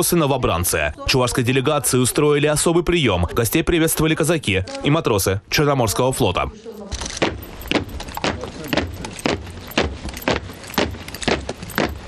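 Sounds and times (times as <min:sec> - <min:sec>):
boots marching on stone: 0:07.0 - 0:12.0.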